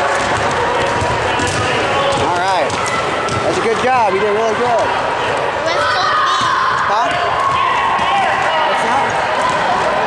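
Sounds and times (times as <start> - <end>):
basketballs bouncing on hardwood: 0.0 - 4.0
many people talking: 0.0 - 10.0.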